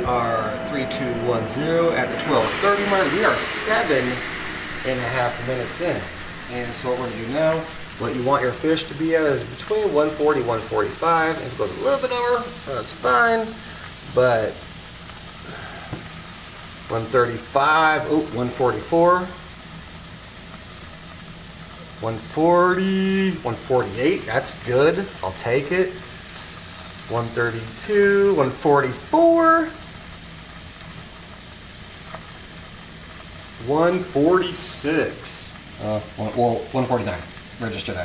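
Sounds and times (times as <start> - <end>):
fish sizzling on a grill: 0.0 - 38.0
low appliance hum: 0.0 - 38.0.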